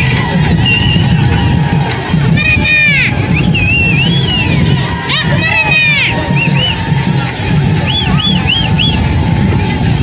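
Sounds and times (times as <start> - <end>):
crowd shouting and cheering: 0.0 - 10.0.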